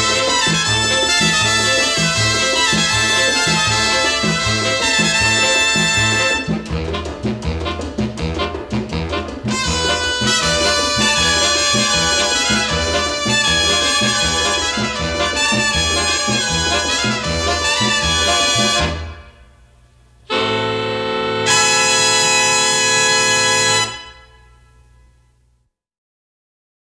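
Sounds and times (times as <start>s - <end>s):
big band rumba with brass: 0.0s - 19.4s, 20.3s - 24.4s
held brass chord: 0.0s - 19.5s, 20.3s - 25.0s.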